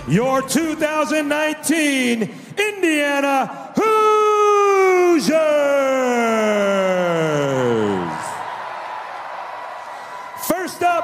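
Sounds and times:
arena noise: 2.6 - 11.0.

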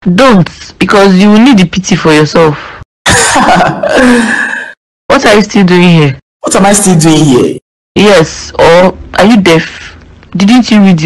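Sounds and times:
breathy raspy laugh: 3.1 - 4.7.

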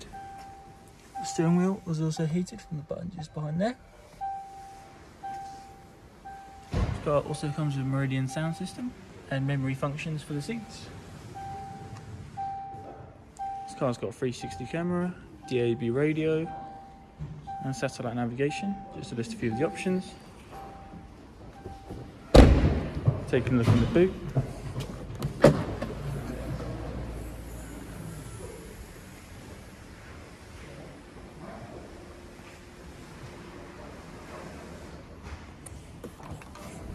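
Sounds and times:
car warning chime: 0.0 - 24.3
thump: 6.7 - 7.1, 22.3 - 23.9.

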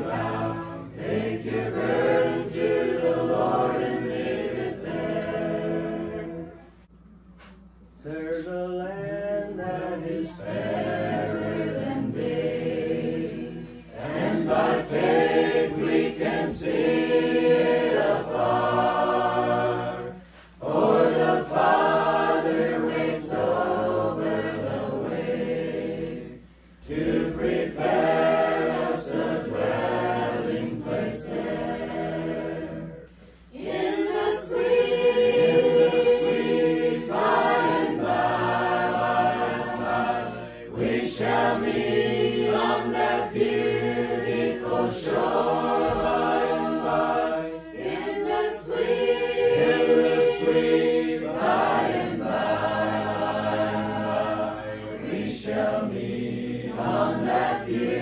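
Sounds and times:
group singing a cappella: 0.0 - 58.0.

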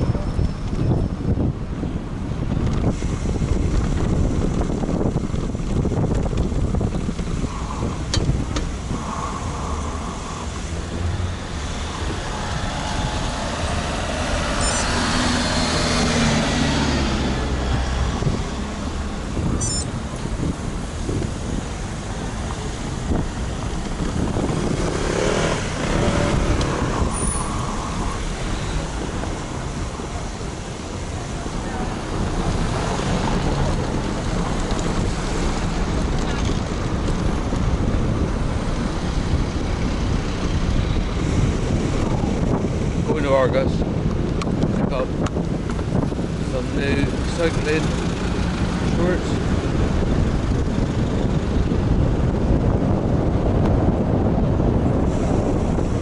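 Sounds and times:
vehicle engine humming: 0.0 - 56.0
wind buffeting microphone: 0.0 - 56.0
bicycle tyres rumbling over cobbles: 2.4 - 15.9, 20.2 - 56.0
vehicle passing: 7.4 - 43.8.

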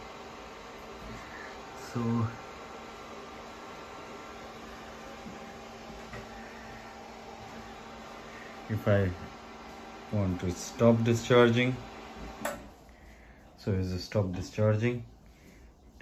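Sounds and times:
cooling fan running: 0.0 - 16.0.

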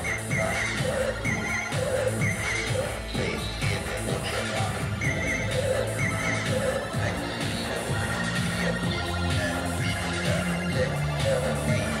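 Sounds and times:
low synthesizer bass line: 0.0 - 12.0.

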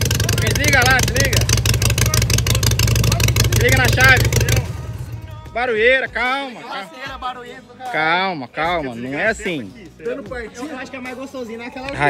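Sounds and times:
motorcycle engine running: 0.0 - 6.2.

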